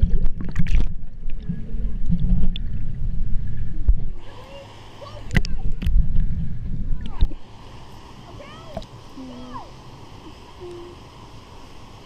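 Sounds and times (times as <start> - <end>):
muffled underwater rumble: 0.0 - 11.2.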